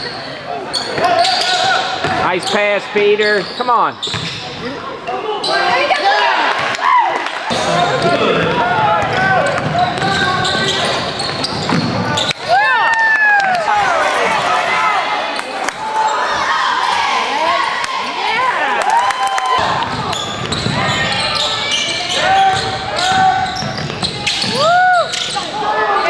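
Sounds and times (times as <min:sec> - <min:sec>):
sneakers squeaking on gym floor: 0:00.0 - 0:06.0, 0:09.4 - 0:12.5, 0:19.9 - 0:26.0
spectators' voices: 0:00.0 - 0:26.0
basketball bouncing: 0:04.1 - 0:04.4, 0:07.5 - 0:12.3, 0:19.6 - 0:21.2.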